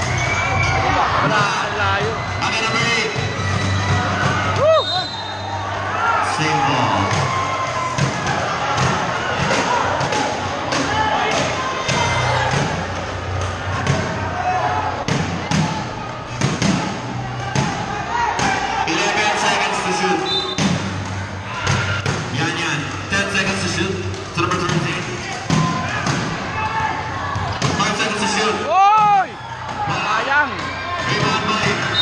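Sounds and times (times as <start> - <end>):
crowd voices and shouts: 0.0 - 32.0.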